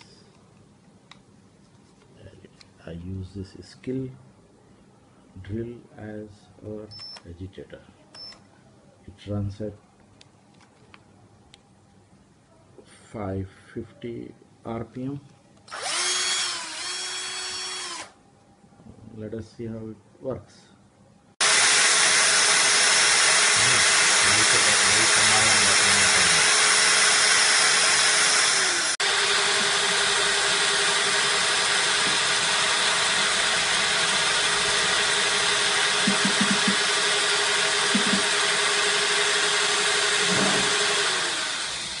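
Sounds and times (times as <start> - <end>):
power drill motor whine: 15.7 - 18.2, 21.4 - 42.0.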